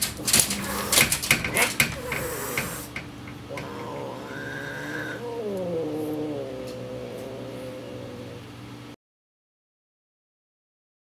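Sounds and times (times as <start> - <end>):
cat yowling: 1.6 - 2.9, 3.5 - 8.6.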